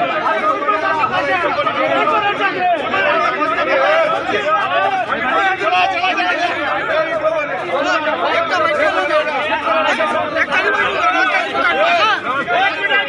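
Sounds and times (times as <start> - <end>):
crowd of men talking and shouting: 0.0 - 13.0.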